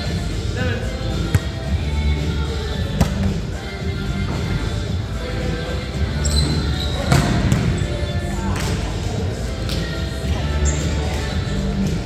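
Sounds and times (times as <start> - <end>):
music playing: 0.0 - 12.0
voices in a gym: 0.0 - 12.0
volleyball smack: 3.0 - 3.3.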